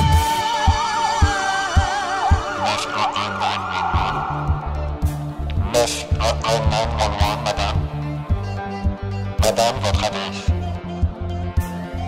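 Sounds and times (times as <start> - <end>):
kick-drum beat: 0.0 - 2.5, 4.0 - 9.0
bass line: 0.0 - 12.0
siren-like wail: 0.4 - 5.0.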